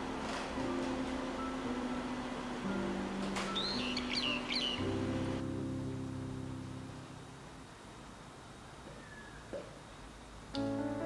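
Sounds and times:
soft background music: 0.0 - 7.8, 10.6 - 11.0
bird chirping: 3.4 - 5.4, 8.8 - 9.6.

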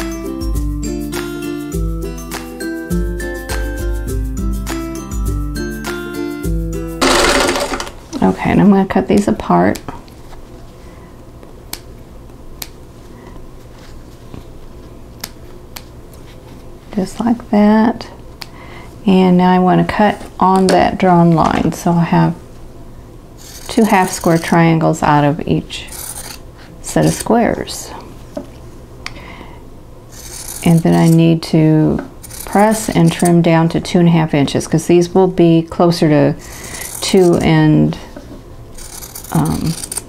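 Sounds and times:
scissors snipping fabric: 23.4 - 24.6, 30.2 - 31.3, 32.2 - 33.4, 36.5 - 37.5, 38.8 - 40.0
scissors snipping threads: 38.8 - 40.0.

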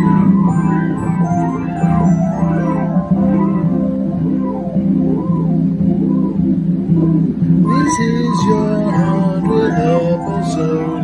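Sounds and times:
electronic keyboard organ-like chords: 0.0 - 11.0.

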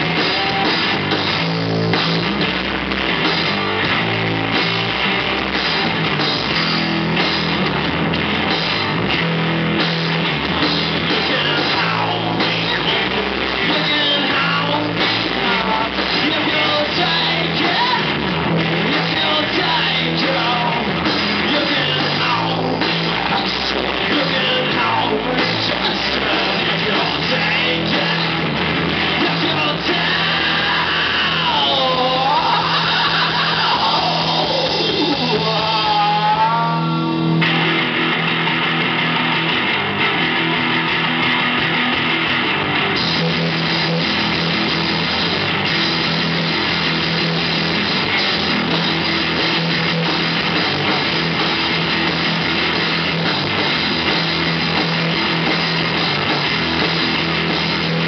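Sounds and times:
live rock band playing loud: 0.0 - 58.0.

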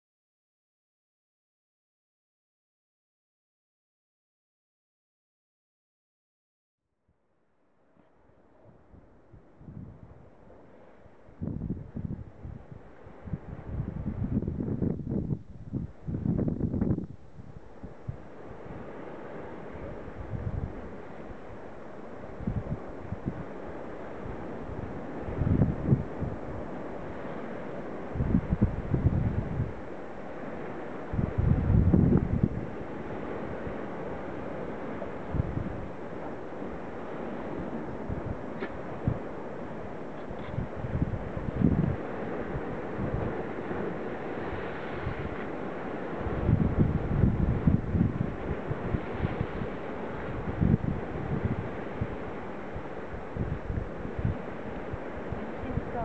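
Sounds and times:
wind buffeting microphone: 8.6 - 56.0
surf rushing: 17.6 - 56.0.

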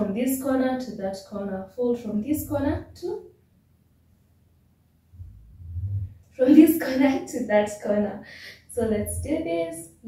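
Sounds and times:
low rumble: 5.1 - 6.3, 8.8 - 9.4.

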